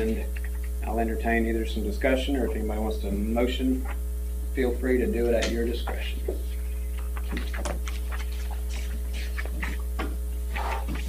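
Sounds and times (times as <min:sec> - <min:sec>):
electrical mains hum: 0:00.0 - 0:11.0
faint clicks and rustles: 0:05.4 - 0:11.0.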